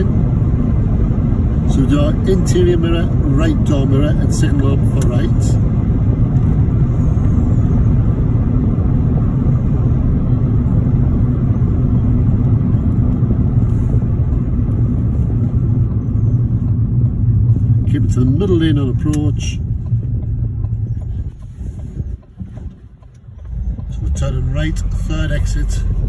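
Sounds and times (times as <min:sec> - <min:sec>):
engine and tyre rumble in car: 0:00.0 - 0:26.0.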